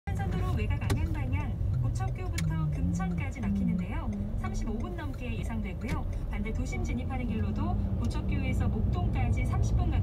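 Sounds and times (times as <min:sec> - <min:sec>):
road rumble inside car: 0:00.1 - 0:10.0.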